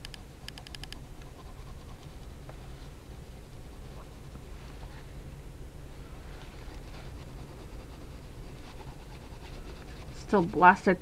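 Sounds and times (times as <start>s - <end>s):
steady low hum: 0.0s - 11.0s
pencil scratching on paper: 1.1s - 2.4s, 6.8s - 11.0s.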